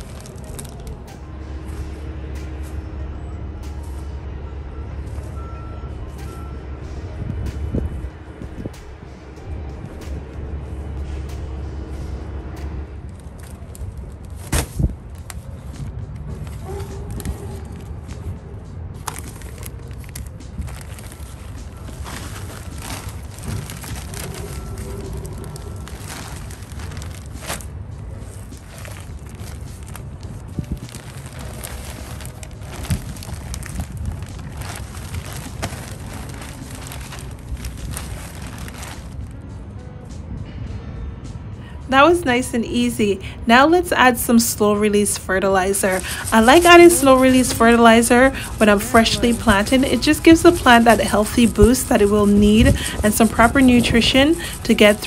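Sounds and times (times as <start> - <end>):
background music: 0.0 - 55.0
soil pouring from plastic bag: 19.0 - 39.3, 45.7 - 55.0.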